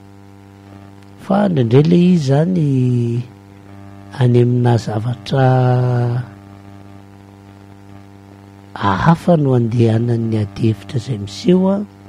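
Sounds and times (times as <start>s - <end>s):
low electrical hum: 0.0s - 12.0s
person speaking: 1.2s - 3.4s, 4.1s - 6.4s, 8.8s - 12.0s.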